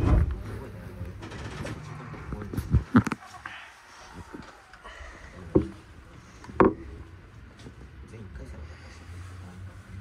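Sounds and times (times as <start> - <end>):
sharp knocks: 6.5 - 7.0.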